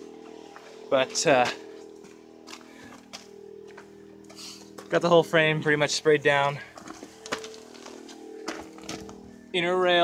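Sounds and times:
quiet steady hum: 0.0s - 10.0s.

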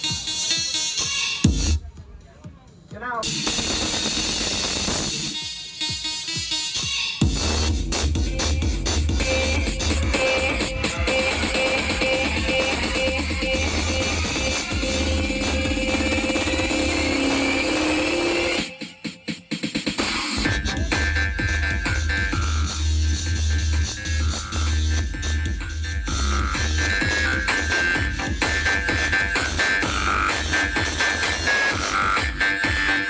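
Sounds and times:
choppy stuttering beats: 0.0s - 33.0s
loud electronic dance music: 0.0s - 33.0s
buzzy synth tone rising: 7.2s - 18.7s, 20.0s - 33.0s.

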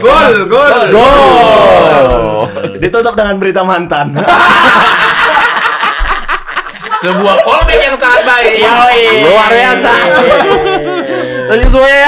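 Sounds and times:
men laughing loudly: 0.8s - 3.1s, 4.0s - 11.7s.

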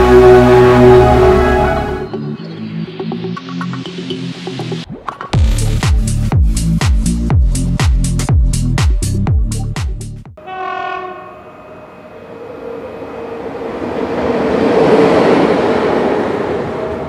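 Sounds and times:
passing train rushing: 0.0s - 2.1s, 10.4s - 17.0s
train horn: 0.0s - 2.1s, 10.4s - 12.5s
electronic dance beat: 5.8s - 10.2s.

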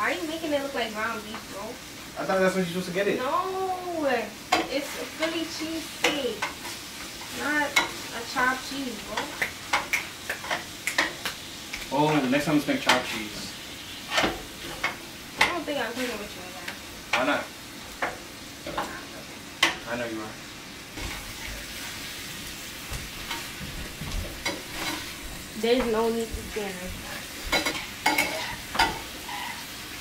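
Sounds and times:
meat sizzling in a frying pan: 0.0s - 30.0s
utensil chopping in frying pan: 4.4s - 13.2s, 22.8s - 26.6s, 27.4s - 29.6s
spatula scraping pan: 23.1s - 29.8s.

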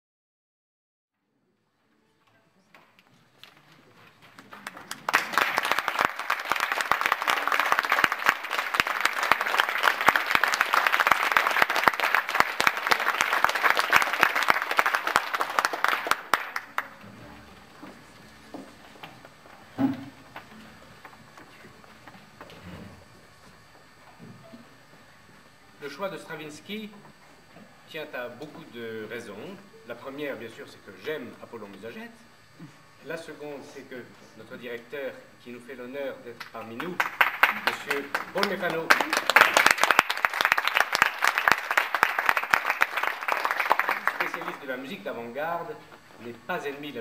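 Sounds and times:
audience applauding: 2.8s - 17.1s, 36.6s - 45.1s.

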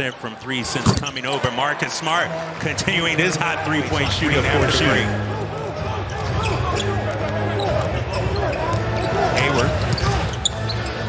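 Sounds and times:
sneakers squeaking: 5.7s - 11.0s.

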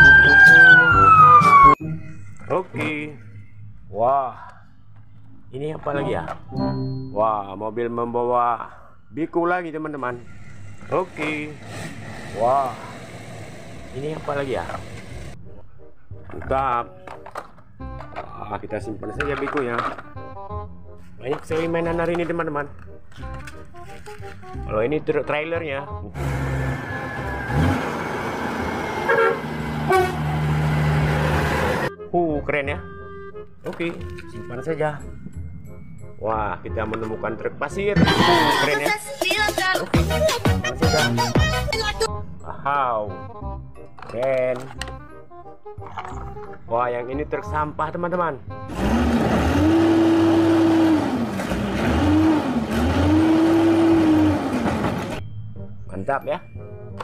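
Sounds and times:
trucks driving past: 10.0s - 15.5s, 26.0s - 32.0s, 48.5s - 55.8s
short horn toots: 29.1s - 30.3s.

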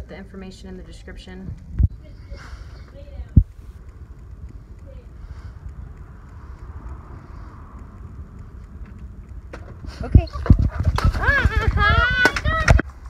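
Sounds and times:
low outdoor rumble: 0.0s - 13.0s
faint hiss: 1.3s - 8.8s.

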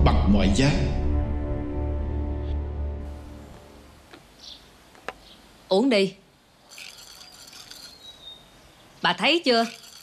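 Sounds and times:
insects chirring: 6.5s - 10.0s.

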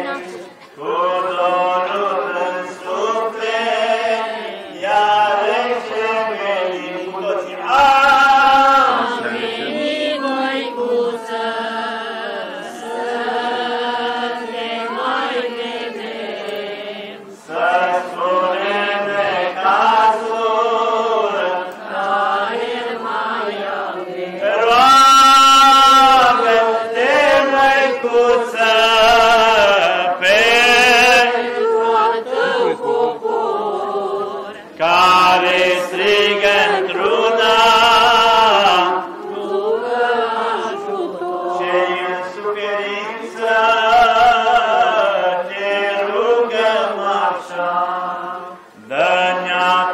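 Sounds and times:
voices singing a chant: 0.0s - 49.9s.

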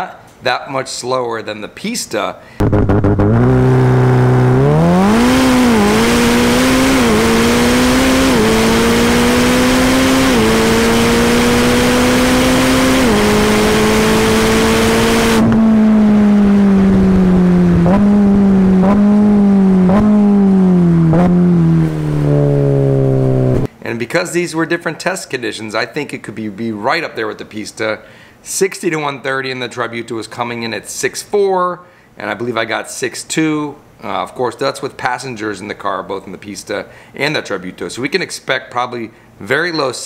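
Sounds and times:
car engine revving through gears: 2.6s - 23.7s.

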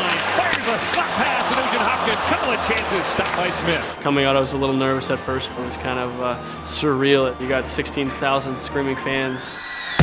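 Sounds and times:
hockey sticks and puck clacking: 0.0s - 3.9s
crowd noise: 0.0s - 6.0s.

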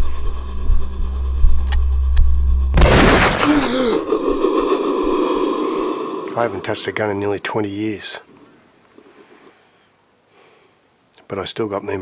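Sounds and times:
noisy low drone: 0.0s - 6.9s.

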